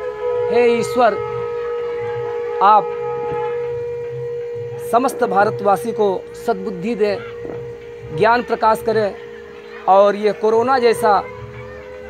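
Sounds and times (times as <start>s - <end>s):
conch shell blown: 0.0s - 12.0s.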